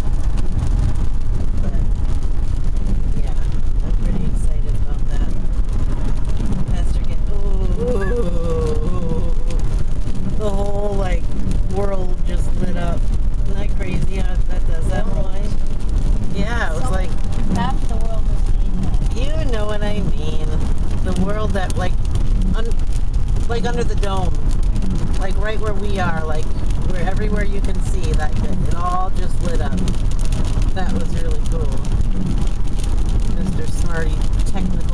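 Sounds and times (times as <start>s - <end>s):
road and engine rumble in car: 0.0s - 34.9s
voices talking: 16.3s - 22.0s.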